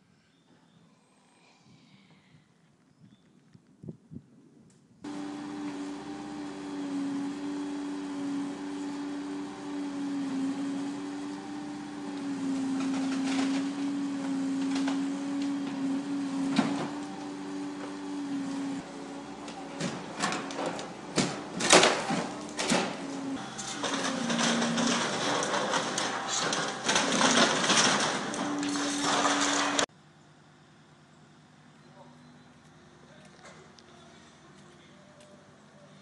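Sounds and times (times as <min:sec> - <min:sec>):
excavator droning hum: 0:05.0 - 0:36.0
falling debris rattling: 0:05.1 - 0:18.2, 0:19.2 - 0:29.9
splintering timber cracks: 0:23.6 - 0:29.9.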